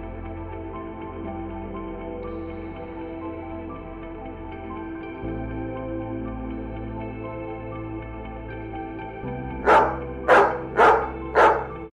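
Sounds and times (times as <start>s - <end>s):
soft background music: 0.0s - 11.9s
dog barking: 9.6s - 11.9s.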